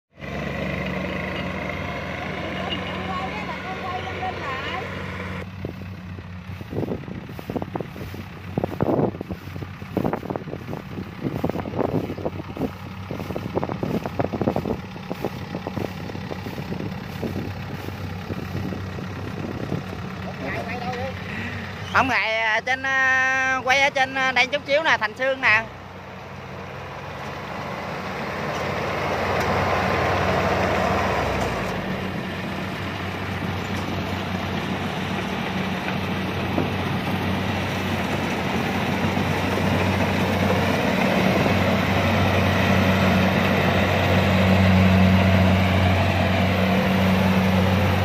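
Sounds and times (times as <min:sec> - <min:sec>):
combine harvester diesel engine: 0:00.1 - 0:48.0.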